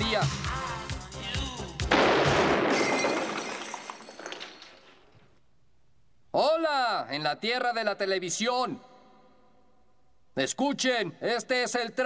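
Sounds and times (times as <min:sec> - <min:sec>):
music: 0:00.0 - 0:02.0
gunshot: 0:01.9 - 0:03.2
glass breaking: 0:01.9 - 0:05.2
debris clattering: 0:01.9 - 0:05.3.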